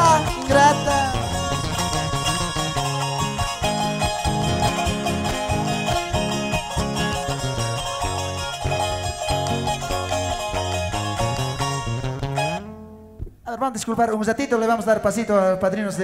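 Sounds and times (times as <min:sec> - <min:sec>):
folk band playing: 0:00.0 - 0:13.0
bright plucked strings: 0:00.0 - 0:13.4.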